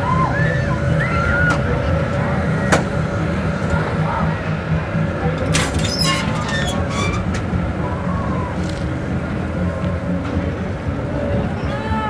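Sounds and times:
distant voices: 0.0 - 12.0
ride machinery hum and whine: 0.0 - 12.0.

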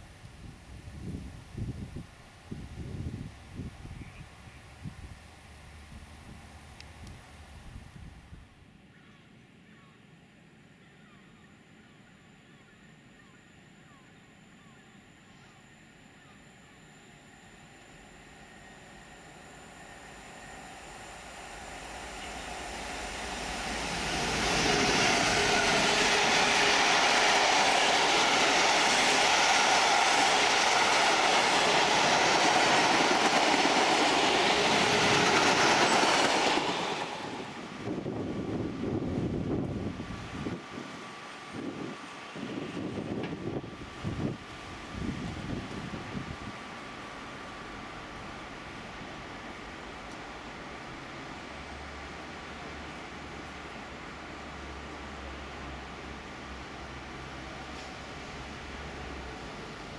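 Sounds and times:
diesel locomotive engine: 11.0 - 59.9
train wheels roaring on rail: 16.1 - 59.9.

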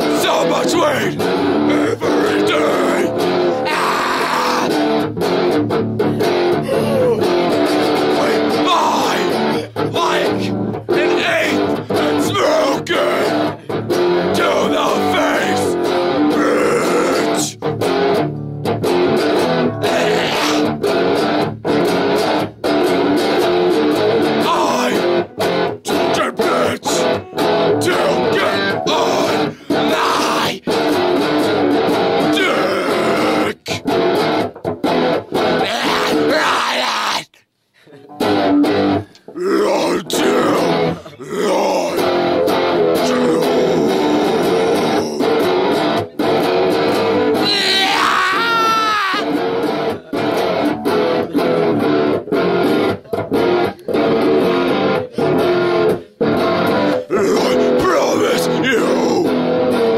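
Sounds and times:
man singing or shouting: 0.0 - 4.8, 6.5 - 13.6, 14.2 - 17.6, 19.8 - 20.8, 24.4 - 25.3, 25.9 - 30.8, 32.2 - 33.8, 35.6 - 37.4, 39.3 - 45.7, 47.4 - 49.4, 56.8 - 59.4
guitar strumming: 0.0 - 36.4, 37.9 - 59.9.

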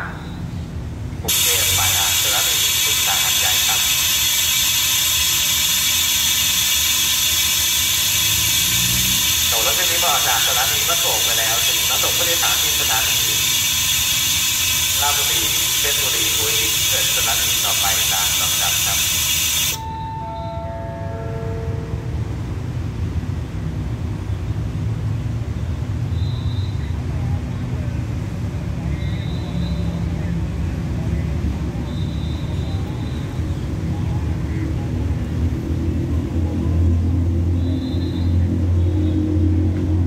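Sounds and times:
diesel train engines idling: 0.0 - 26.3
electronic falling chime: 19.8 - 21.4.

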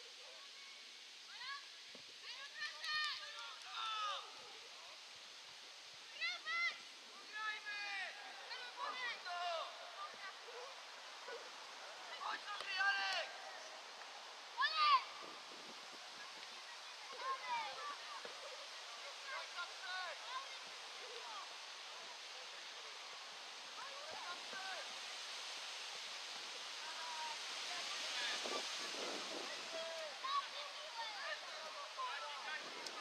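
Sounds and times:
distant shouts of players: 6.1 - 23.0
wind noise: 15.0 - 19.6, 22.7 - 30.8.

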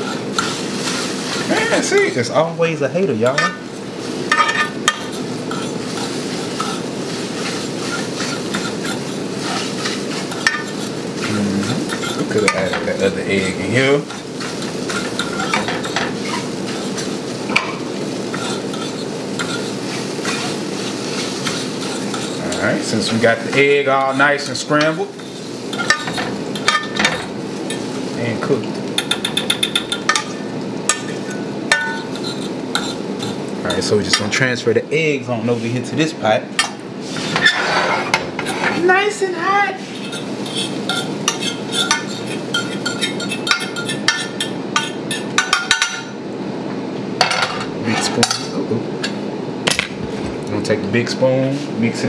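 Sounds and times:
egg sizzling in a frying pan: 0.0 - 34.4, 36.6 - 46.3
utensil scraping and tapping pan: 7.4 - 10.9, 29.0 - 34.3, 39.9 - 46.0
metal utensil clinking on frying pan: 29.0 - 33.0.

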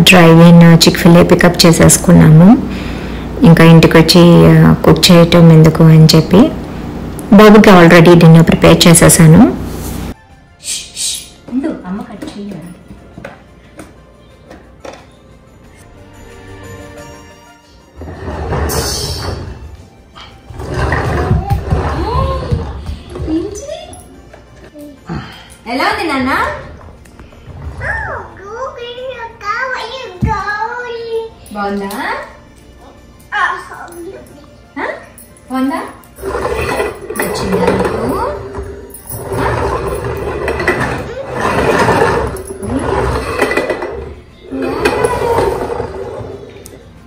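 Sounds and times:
toy truck low rumbling: 39.2 - 46.5.

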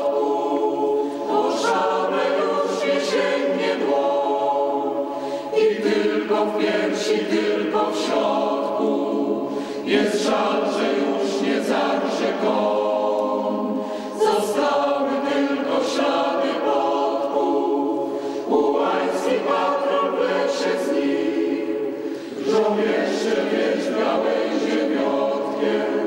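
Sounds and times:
choir singing: 0.0 - 26.0.

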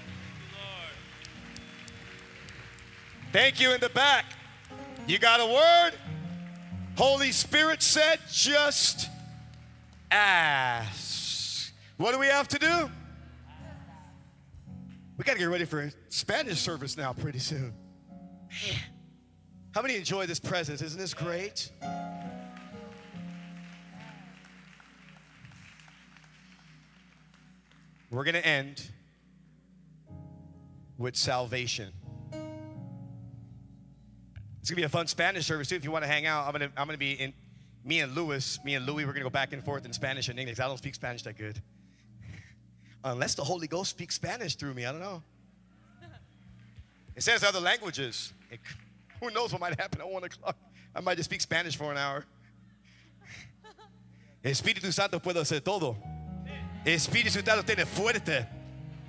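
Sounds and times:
faint applause: 0.0 - 11.1, 21.8 - 28.3
congregation noise: 0.0 - 11.2
soft worship band music: 0.0 - 59.0.

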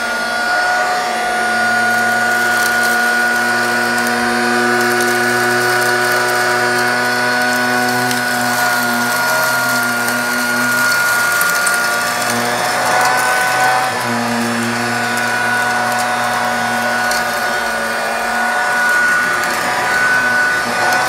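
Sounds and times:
handheld vacuum motor whine: 0.0 - 21.0
eggshell fragments rattling: 1.7 - 21.0.

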